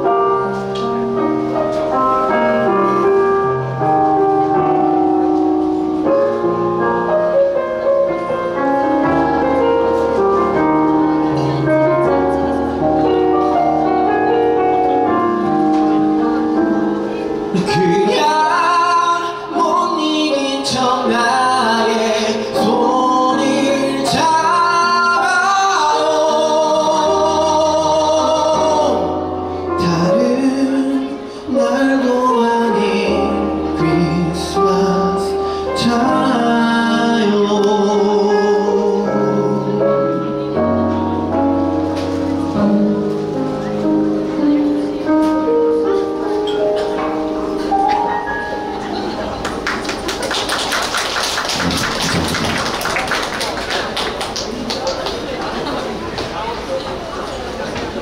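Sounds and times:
man singing into microphone: 17.5s - 40.5s
audience applause: 49.1s - 56.9s.

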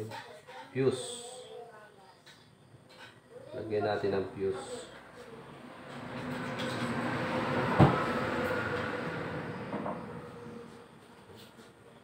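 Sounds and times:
passing vehicle rumbling: 3.7s - 12.0s.

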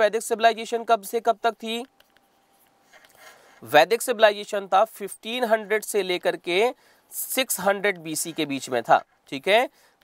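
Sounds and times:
man speaking: 0.0s - 2.0s, 3.6s - 9.8s.

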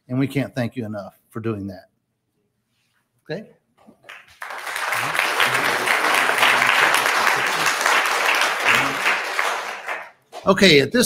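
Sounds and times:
audience applauding: 4.0s - 10.2s.

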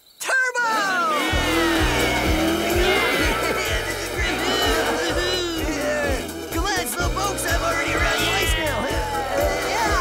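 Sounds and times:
race car engine revving: 1.2s - 10.0s
upbeat music with bass beat: 1.4s - 10.0s.

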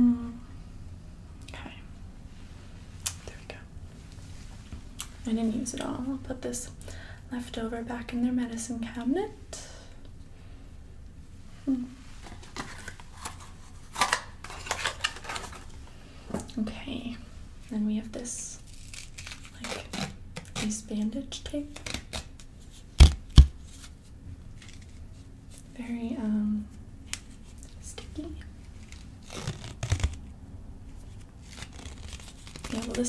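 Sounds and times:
soft vocal sounds: 0.0s - 0.7s
bandage crinkling and rustling: 12.1s - 15.9s, 21.7s - 25.7s, 28.5s - 30.3s, 30.9s - 33.0s.

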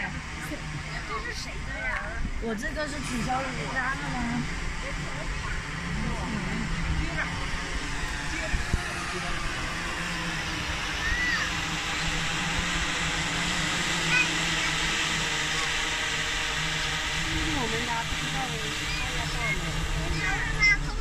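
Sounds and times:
drone rotors humming: 0.0s - 21.0s.

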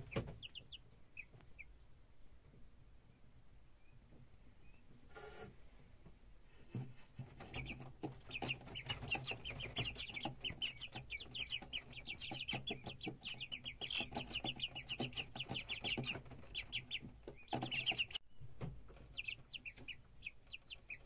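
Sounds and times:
chicks peeping and chirping: 0.0s - 5.5s, 6.6s - 21.0s.

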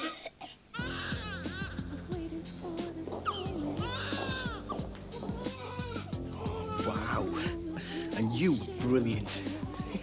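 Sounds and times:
newborn baby crying: 0.0s - 8.8s
background music: 0.8s - 10.0s.

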